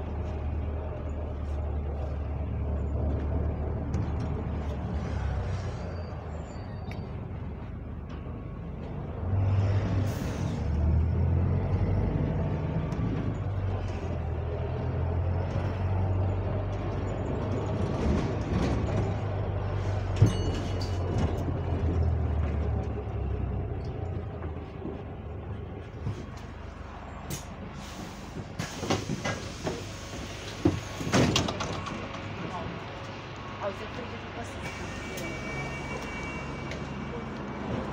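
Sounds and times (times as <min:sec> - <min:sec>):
bus engine drone with rattles: 0:00.0 - 0:37.9
bus doors knocking open: 0:27.2 - 0:32.4
air brake hiss: 0:27.3 - 0:31.1, 0:34.6 - 0:35.5.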